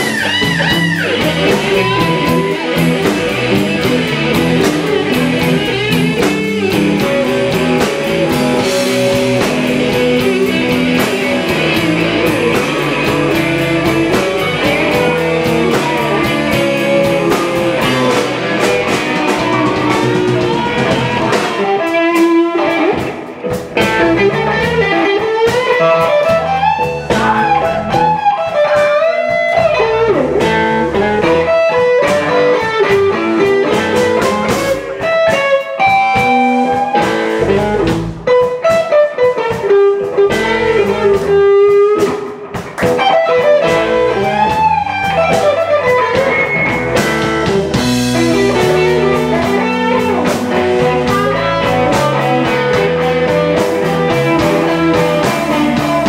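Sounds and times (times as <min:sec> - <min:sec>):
blues band playing: 0:00.0 - 0:56.0
electric guitar sliding notes: 0:00.0 - 0:56.0.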